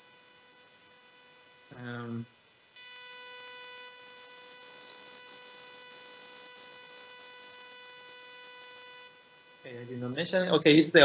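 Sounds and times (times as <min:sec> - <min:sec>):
steady electronic buzz: 0:00.0 - 0:11.0.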